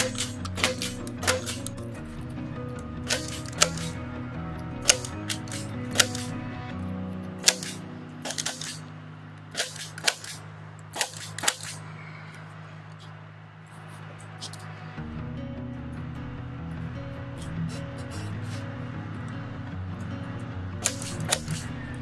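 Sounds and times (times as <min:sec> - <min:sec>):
staple gun snapping: 0:00.0 - 0:01.8, 0:03.0 - 0:04.0, 0:04.8 - 0:06.4, 0:07.4 - 0:08.8, 0:09.6 - 0:10.4, 0:11.0 - 0:11.8, 0:20.8 - 0:21.7.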